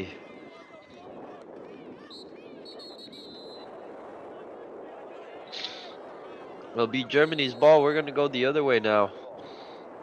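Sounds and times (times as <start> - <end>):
distant calls from players: 0.0 - 8.5
murmur of spectators: 0.0 - 10.0
referee's whistle: 2.1 - 3.7, 7.2 - 8.1.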